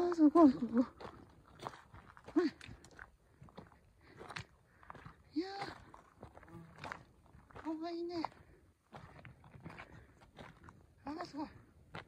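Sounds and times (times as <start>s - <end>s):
footsteps crunching on stones: 0.0s - 12.0s.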